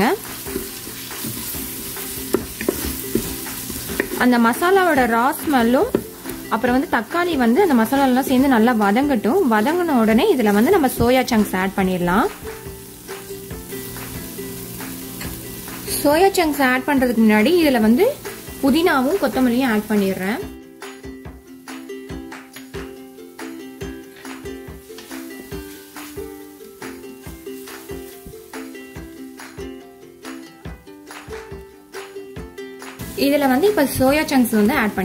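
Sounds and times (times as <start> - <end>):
masala sizzling in oil: 0.0 - 30.4, 32.9 - 35.0
background music with held notes: 0.0 - 35.0.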